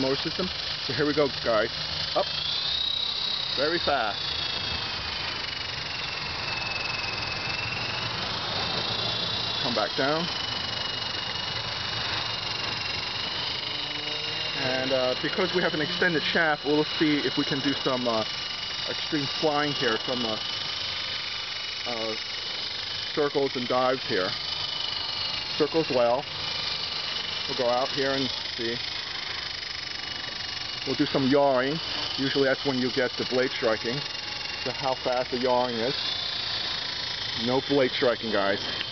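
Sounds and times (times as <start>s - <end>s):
rc helicopter rotor whine: 0.0s - 38.9s.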